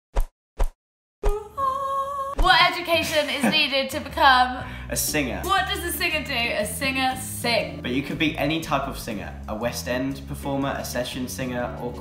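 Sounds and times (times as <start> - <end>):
woman singing a long note: 1.3 - 2.4.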